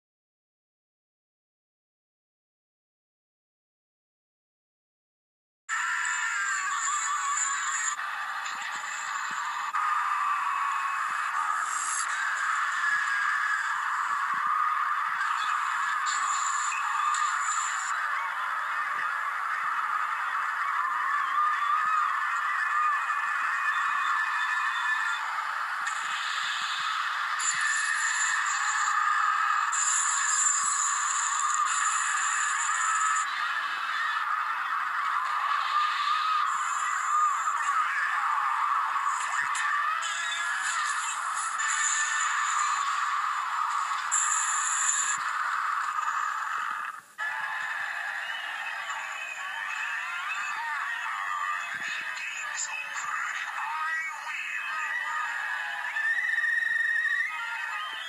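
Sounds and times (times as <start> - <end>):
tinny cartoon music from television: 5.7 - 58.0.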